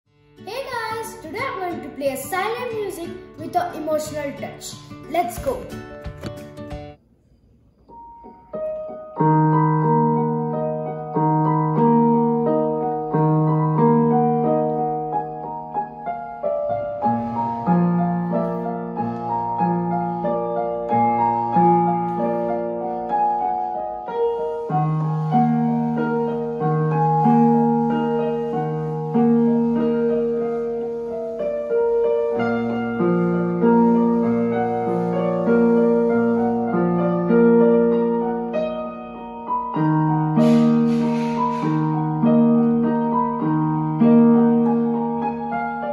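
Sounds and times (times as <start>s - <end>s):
electronic keyboard piano notes: 7.9s - 45.9s.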